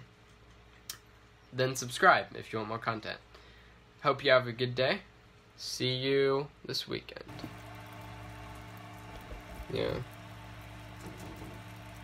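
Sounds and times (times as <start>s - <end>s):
small motor humming: 7.3s - 12.0s.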